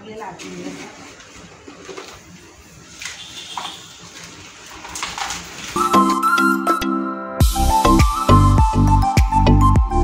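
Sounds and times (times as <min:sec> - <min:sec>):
plastic scoop scraping soil: 0:04.0 - 0:06.1
background music: 0:05.8 - 0:10.0.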